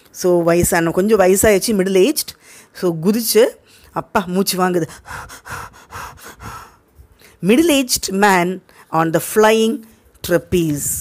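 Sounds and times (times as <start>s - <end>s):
person gasping and panting: 4.8s - 7.2s.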